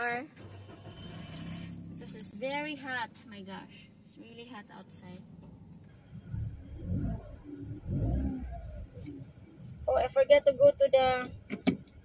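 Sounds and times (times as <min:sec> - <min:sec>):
car engine revving: 0:00.4 - 0:03.6, 0:05.0 - 0:12.0.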